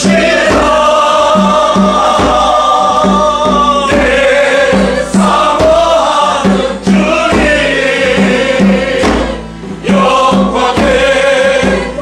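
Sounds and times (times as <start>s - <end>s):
choir singing held notes: 0.0s - 12.0s
steady beat: 0.0s - 12.0s.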